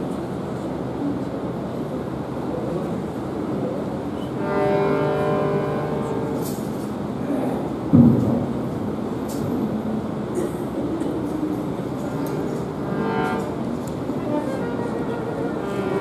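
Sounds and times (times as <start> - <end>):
hall rumble: 2.6 - 16.0
low thump: 7.9 - 8.5
held pitched note: 12.0 - 16.0.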